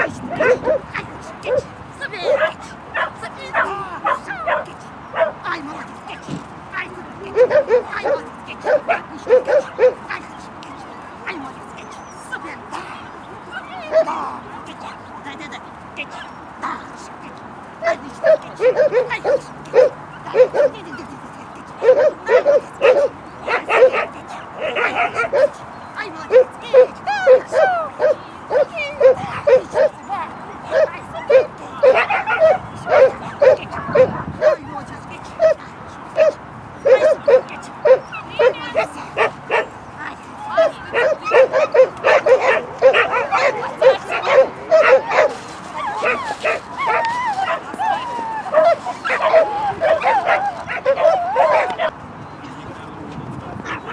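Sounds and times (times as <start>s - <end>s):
dog barking excitedly: 0.0s - 10.4s, 11.2s - 15.1s, 17.8s - 21.1s, 21.7s - 34.7s, 35.3s - 39.8s, 40.5s - 52.0s.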